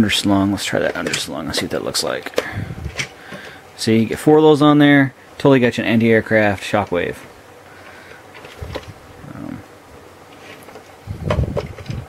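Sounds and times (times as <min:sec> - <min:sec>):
plastic toy parts handled: 0:00.7 - 0:03.5, 0:08.3 - 0:09.0.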